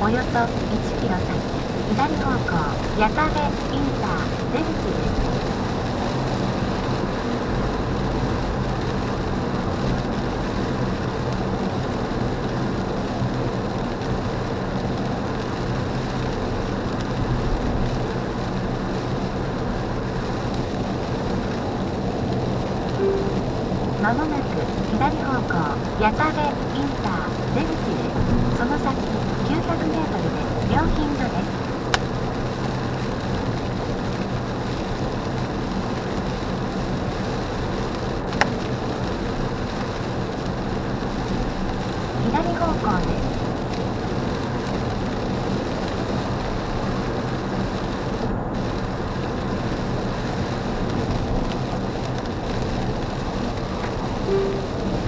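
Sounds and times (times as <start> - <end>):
low engine drone: 0.0 - 10.4, 23.0 - 31.6, 53.9 - 55.0
tyre noise on wet road: 1.4 - 55.0.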